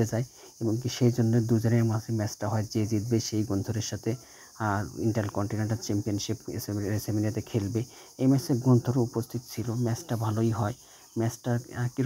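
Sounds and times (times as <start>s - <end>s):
man narrating: 0.0s - 12.0s
steady high-pitched hiss: 0.0s - 12.0s.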